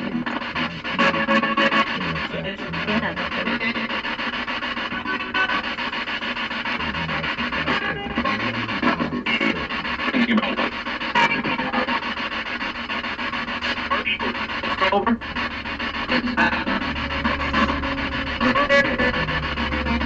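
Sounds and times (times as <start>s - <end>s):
choppy radio static: 0.0s - 20.0s
snatches of music: 0.0s - 20.0s.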